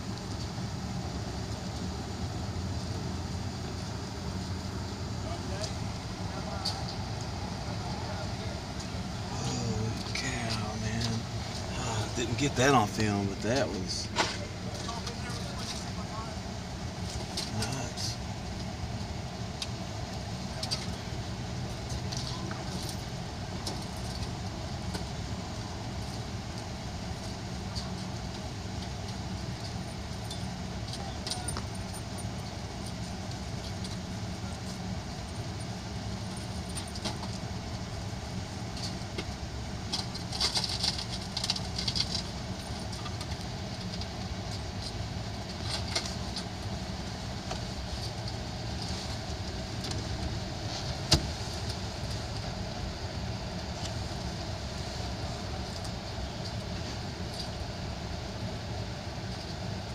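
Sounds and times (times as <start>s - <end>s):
vehicle engine idling: 0.0s - 59.9s.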